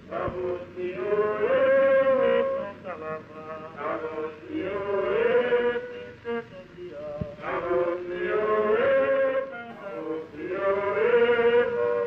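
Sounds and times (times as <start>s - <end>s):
men singing a work chant: 0.0s - 12.0s.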